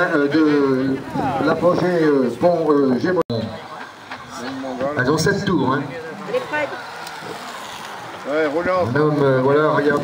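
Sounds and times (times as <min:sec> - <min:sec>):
steady outdoor noise: 0:00.0 - 0:10.0.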